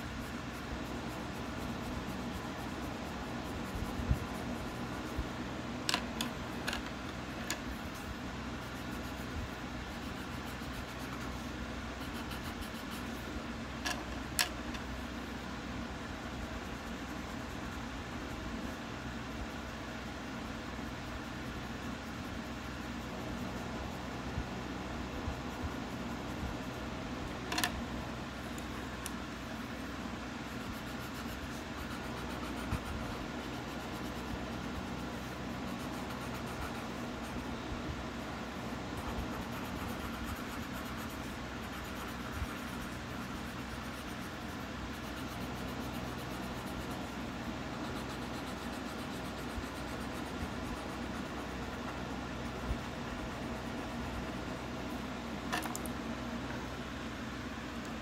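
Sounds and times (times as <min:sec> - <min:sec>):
pencil scratching on paper: 0:00.0 - 0:55.9
steady background hum: 0:00.0 - 0:58.0.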